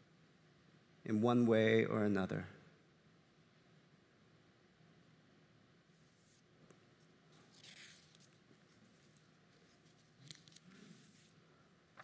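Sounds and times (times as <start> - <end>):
page rustling: 7.3 - 11.4.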